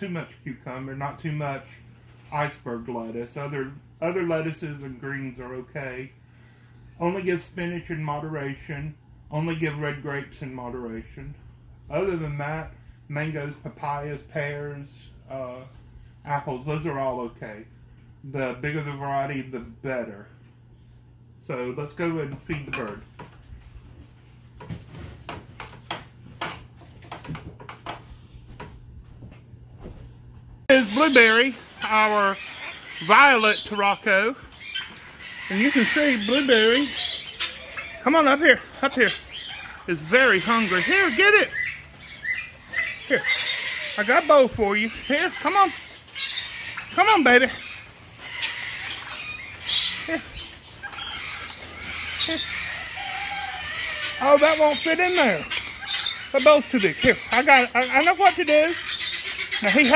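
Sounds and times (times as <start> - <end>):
steady low hum: 0.0 - 59.8
aviary noise: 0.0 - 59.9.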